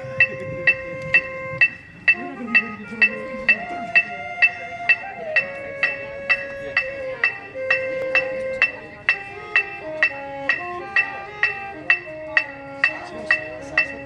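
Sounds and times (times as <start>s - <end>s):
electronic metronome clicking: 0.0s - 14.0s.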